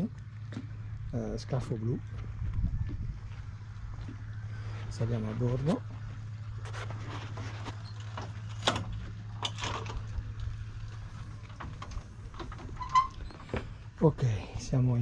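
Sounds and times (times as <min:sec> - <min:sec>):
steady low hum: 0:00.0 - 0:15.0
footsteps on wooden gangway: 0:02.1 - 0:08.4.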